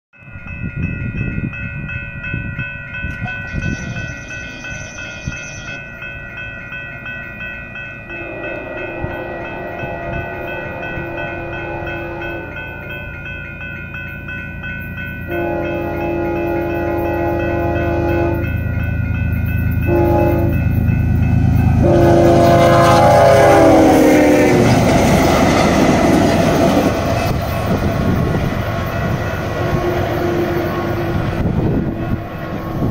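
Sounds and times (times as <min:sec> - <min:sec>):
crossing bell ringing: 0:00.1 - 0:32.9
train rumble: 0:00.2 - 0:32.9
train horn blasts: 0:08.1 - 0:13.1, 0:15.3 - 0:18.6, 0:19.8 - 0:20.8, 0:21.6 - 0:25.0, 0:29.5 - 0:32.9.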